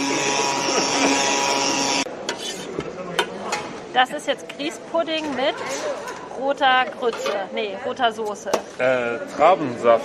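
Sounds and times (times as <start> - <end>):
electric blender running: 0.0 - 2.1.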